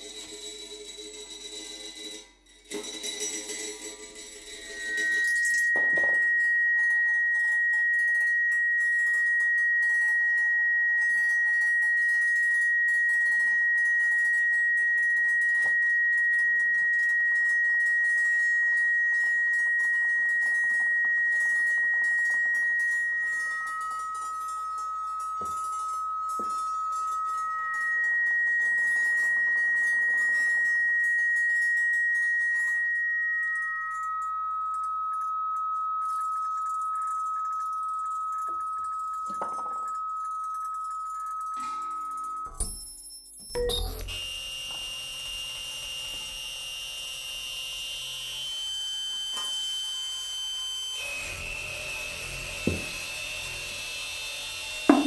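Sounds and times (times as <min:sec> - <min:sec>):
lower electronic tone: 0:00.0 - 0:55.0
steady high electronic tone: 0:00.0 - 0:55.0.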